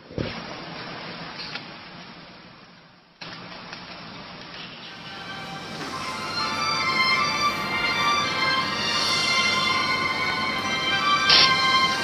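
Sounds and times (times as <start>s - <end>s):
hiss-like background noise: 0.0s - 12.0s.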